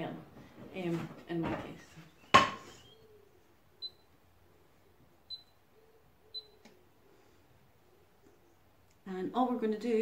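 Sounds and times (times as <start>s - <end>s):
hob touch controls beeping: 3.8s - 4.1s, 5.3s - 5.6s, 6.3s - 6.7s.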